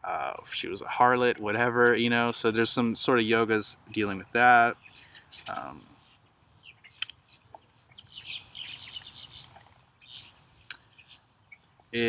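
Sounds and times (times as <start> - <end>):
birds chirping: 0.6 - 12.0.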